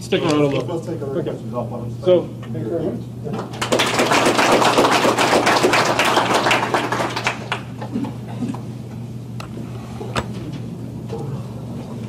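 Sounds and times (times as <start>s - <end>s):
audience applauding: 3.4s - 7.9s.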